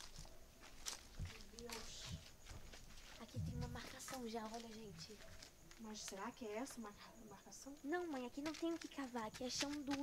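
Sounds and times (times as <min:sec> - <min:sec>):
clothing rustle: 0:00.0 - 0:06.1
footsteps on rough ground: 0:00.0 - 0:06.3.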